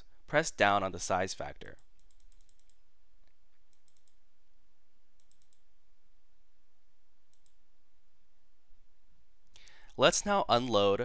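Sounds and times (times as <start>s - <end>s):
steady low hiss: 0.0s - 11.0s
computer mouse clicks: 1.7s - 4.2s, 5.2s - 5.7s, 7.3s - 7.6s.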